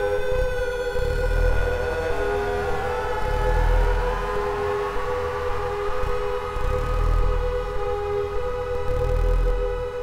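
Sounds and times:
analog synthesizer droning: 0.0s - 10.0s
pulsing low rumble: 0.2s - 8.1s
synth tone sliding upward in pitch: 1.0s - 8.1s.

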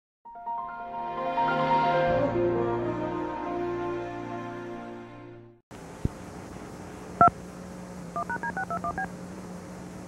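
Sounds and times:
tape hiss: 5.7s - 10.0s.

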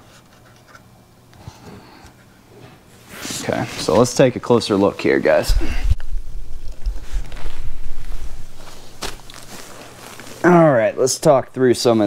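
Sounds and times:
camera handling rumble: 5.5s - 10.4s.

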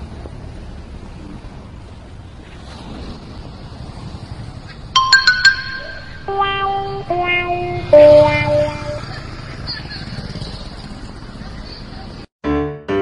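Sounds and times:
street traffic noise: 0.0s - 12.3s
comic descending notes: 5.0s - 9.1s.

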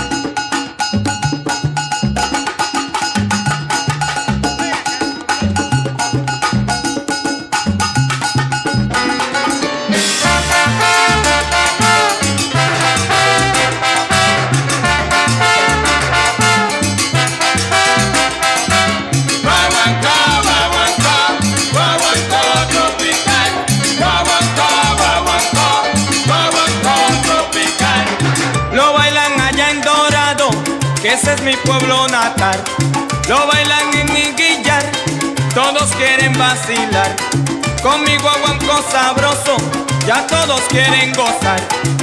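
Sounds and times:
salsa band playing: 0.0s - 42.0s.

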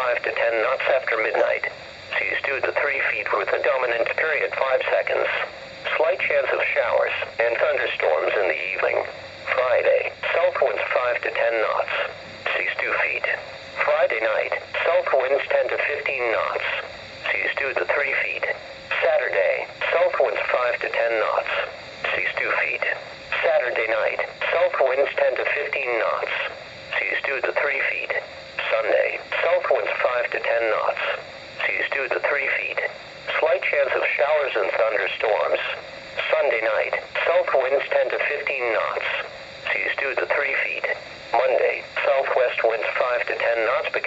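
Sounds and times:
synthesized voice on small speaker: 0.0s - 44.0s.

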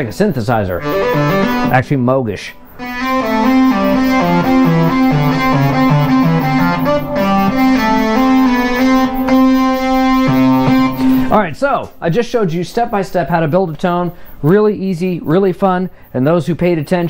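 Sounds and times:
held synthesizer note: 0.7s - 1.9s, 2.6s - 11.4s
synthesizer lead notes: 0.8s - 1.9s, 2.6s - 11.4s.

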